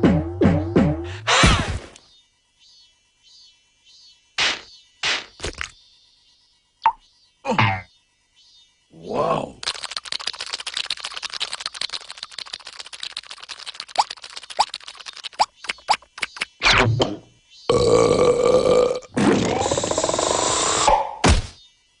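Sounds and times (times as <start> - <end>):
squeaky cartoon vocal noises: 19.1 - 21.1.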